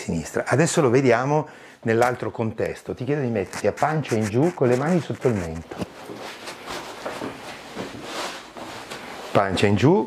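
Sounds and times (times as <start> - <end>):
paper sheet rustling and crinkling: 3.4 - 7.3
body rubbing against couch: 3.5 - 8.9.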